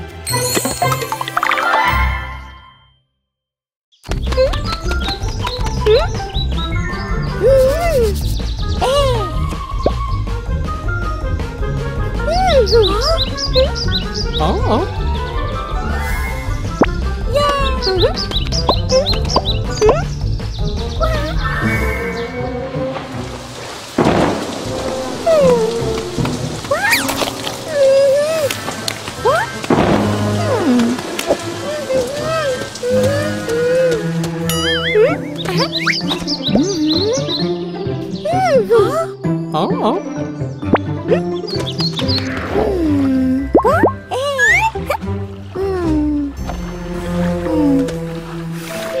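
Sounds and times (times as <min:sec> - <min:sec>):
light background music: 0:04.1 - 0:23.5, 0:24.8 - 0:49.0
rain hiss: 0:21.9 - 0:36.1
thunder clap: 0:22.8 - 0:26.9, 0:28.6 - 0:32.8.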